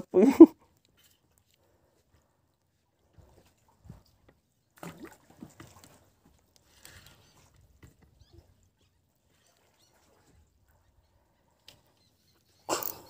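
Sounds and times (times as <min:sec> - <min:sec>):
open water ambience: 0:00.0 - 0:13.0
faint bird chirps: 0:08.1 - 0:13.0.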